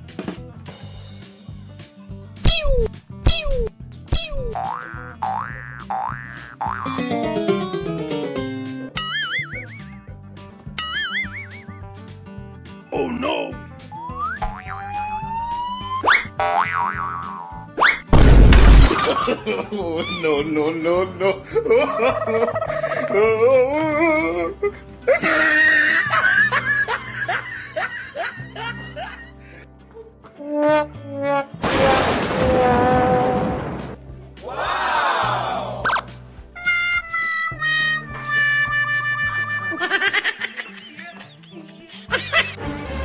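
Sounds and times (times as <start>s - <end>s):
background music: 0.0s - 43.0s
rising whistle slide: 14.0s - 16.2s
wobbling boing: 14.2s - 15.2s
loud cartoon crash: 18.1s - 19.2s, 31.6s - 34.0s
high wavering comic cry: 38.4s - 40.2s.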